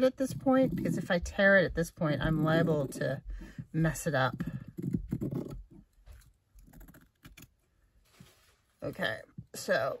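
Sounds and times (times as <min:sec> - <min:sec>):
cloth rustling: 0:07.7 - 0:08.9.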